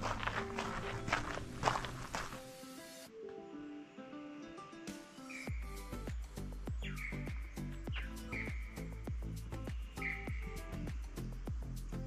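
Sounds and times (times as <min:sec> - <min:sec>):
footsteps on sandy dirt: 0:00.0 - 0:03.0
background music with held notes: 0:00.0 - 0:12.0.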